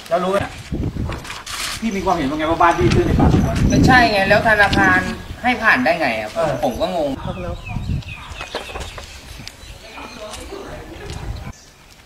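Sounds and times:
bird chirping falling notes: 0:06.6 - 0:10.5.

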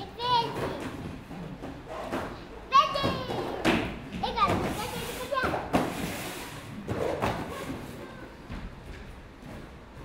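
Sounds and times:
children's voices: 0:00.0 - 0:01.1, 0:02.4 - 0:05.7.

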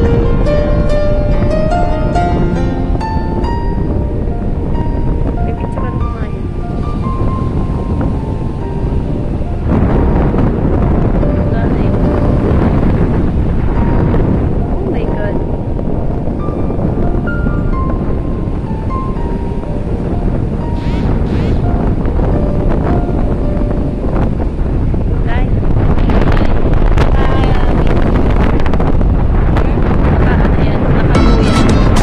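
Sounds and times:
soft background music: 0:00.0 - 0:26.7
wind on microphone: 0:00.0 - 0:32.0.

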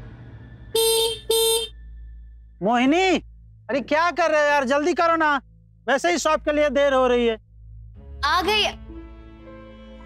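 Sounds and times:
scooter horn beeps: 0:00.7 - 0:01.8.

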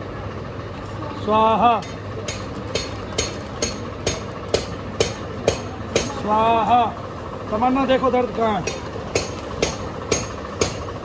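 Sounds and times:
low background hum: 0:00.0 - 0:11.0
sharp knocks: 0:01.8 - 0:06.2, 0:08.6 - 0:10.9.

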